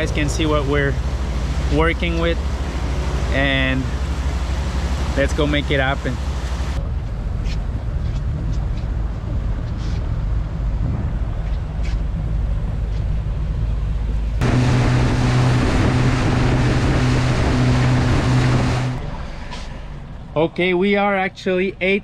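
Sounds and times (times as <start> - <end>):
boat engine rumbling: 0.0 - 22.0.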